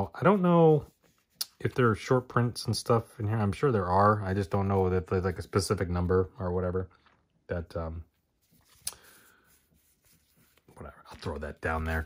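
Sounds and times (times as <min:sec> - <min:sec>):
cards rustling: 0:08.3 - 0:12.0.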